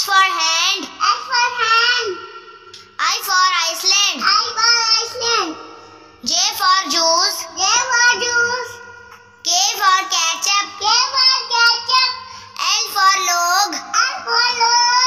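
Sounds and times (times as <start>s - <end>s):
child singing a phonics chant: 0.0s - 2.2s, 2.8s - 5.6s, 6.2s - 8.8s, 9.5s - 15.0s.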